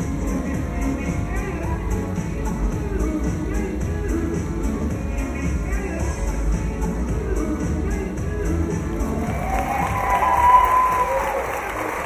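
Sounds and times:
long high whoop: 9.2s - 11.9s
audience cheering and applauding: 9.2s - 12.0s.

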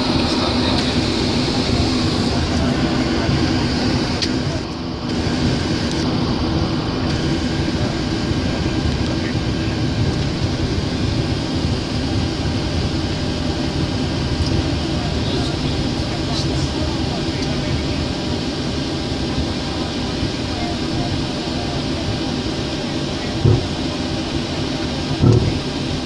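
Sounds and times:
jet airliner taxiing rumble: 0.0s - 26.0s
low hum: 0.0s - 26.0s.

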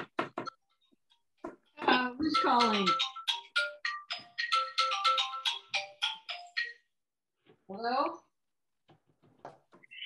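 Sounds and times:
phone ringtone melody: 2.4s - 7.0s.

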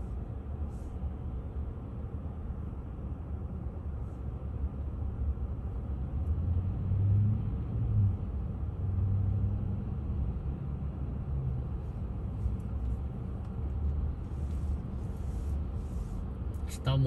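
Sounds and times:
traffic engines rumbling: 0.0s - 17.0s.

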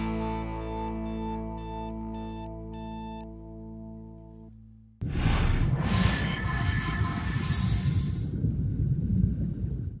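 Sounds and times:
whoosh: 5.0s - 8.4s
deep steady rumble: 5.0s - 10.0s.

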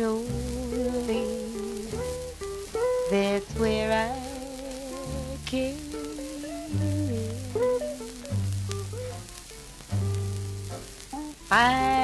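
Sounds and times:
person singing: 0.0s - 8.6s, 11.4s - 12.0s
instrumental ballad accompaniment: 0.0s - 12.0s
record surface hiss and crackle: 0.0s - 12.0s.

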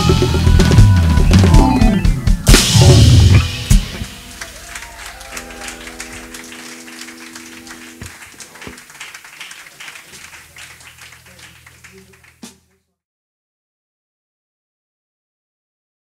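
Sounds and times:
held instrument notes: 1.0s - 8.9s
audience applauding: 3.8s - 12.7s.

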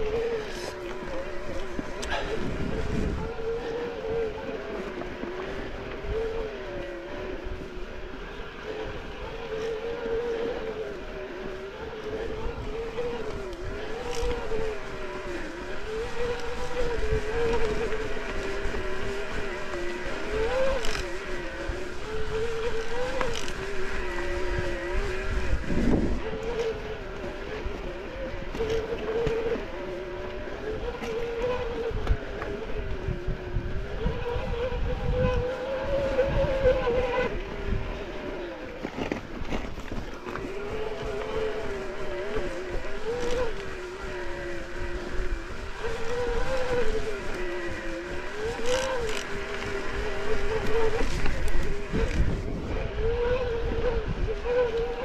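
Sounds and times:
electric bike motor whining: 0.0s - 55.0s.

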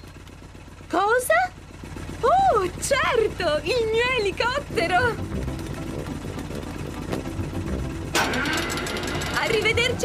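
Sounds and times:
helicopter engine humming: 0.0s - 10.0s.

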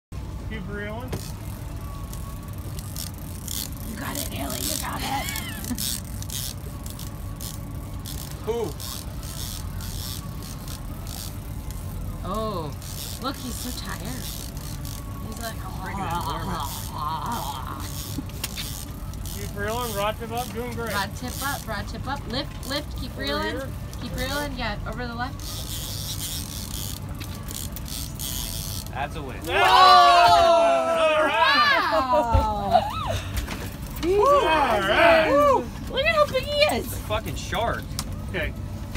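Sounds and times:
boat motor rumbling: 0.2s - 31.4s.

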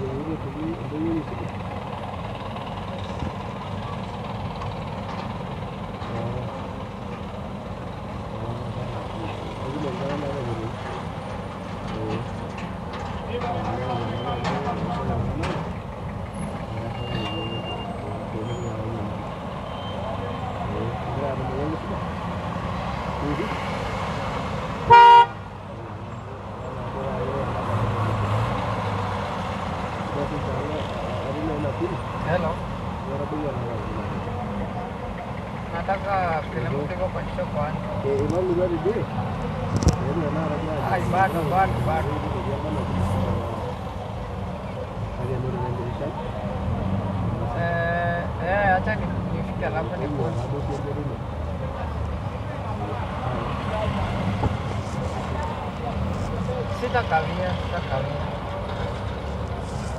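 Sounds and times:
people talking: 0.0s - 1.8s, 6.1s - 6.6s, 8.3s - 10.9s, 11.9s - 12.4s, 13.2s - 15.7s, 16.6s - 19.2s, 20.0s - 22.1s, 23.2s - 23.6s, 25.7s - 28.3s, 30.0s - 35.1s, 35.7s - 39.1s, 39.7s - 43.8s, 44.7s - 46.6s, 47.3s - 58.4s
car engines running at low speed: 0.0s - 59.9s
vehicle horn honk: 24.9s - 25.4s.

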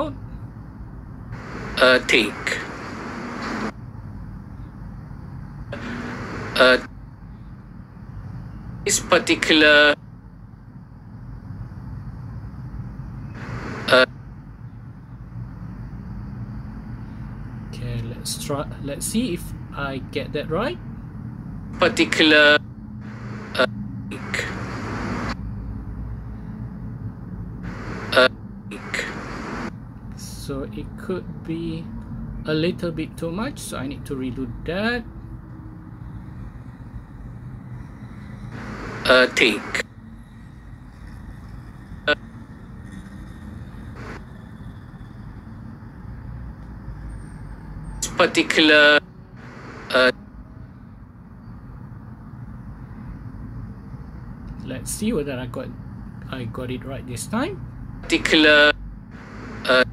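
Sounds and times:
man speaking: 0.0s - 0.2s, 1.8s - 2.7s, 5.8s - 6.9s, 8.9s - 10.0s, 13.9s - 14.1s, 17.8s - 20.8s, 21.8s - 22.6s, 23.5s - 24.7s, 28.1s - 29.3s, 32.5s - 35.1s, 39.0s - 39.8s, 48.0s - 49.0s, 49.9s - 50.2s, 54.6s - 58.8s, 59.7s - 59.9s
low background rumble: 0.0s - 59.9s.

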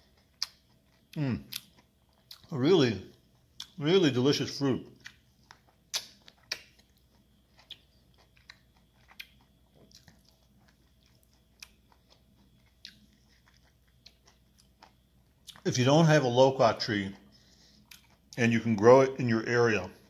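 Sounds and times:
person chewing wet mouth clicks: 0.1s - 2.5s, 3.6s - 3.8s, 5.0s - 15.6s, 17.1s - 18.4s.

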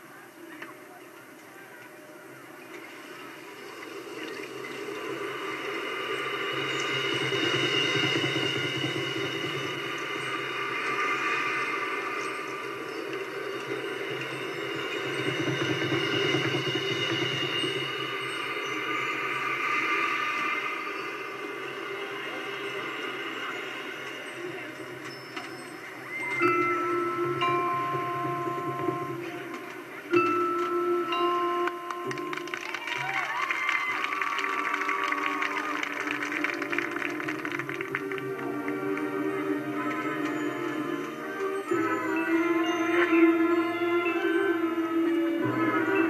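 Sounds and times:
marching band playing held chords: 6.1s - 19.3s, 26.4s - 33.5s, 34.2s - 46.0s.

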